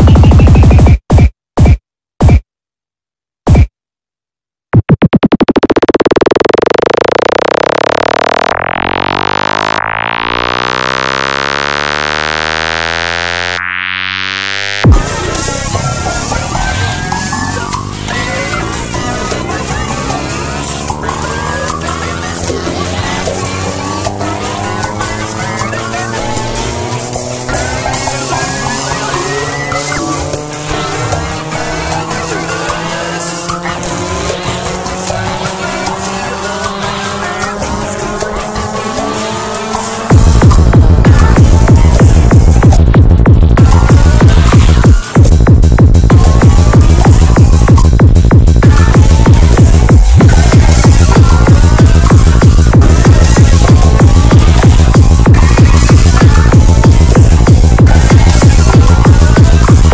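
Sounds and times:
pitch-gliding electronic effects: 0:04.8 - 0:42.7
synthesizer pad with filter sweep: 0:05.3 - 0:42.8.

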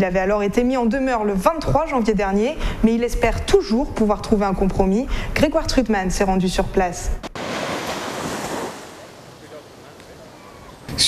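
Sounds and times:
surf washing onto beach: 0:07.3 - 0:11.0.

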